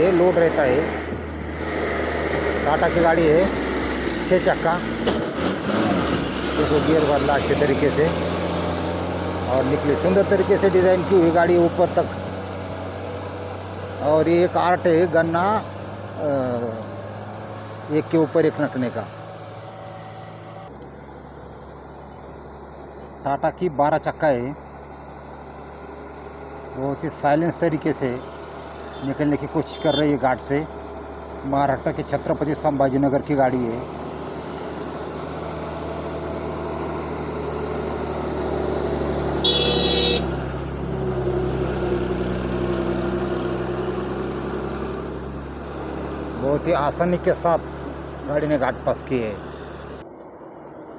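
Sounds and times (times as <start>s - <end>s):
truck diesel engines droning: 0.0s - 50.9s
truck horn toot: 28.8s - 30.2s, 39.4s - 40.4s.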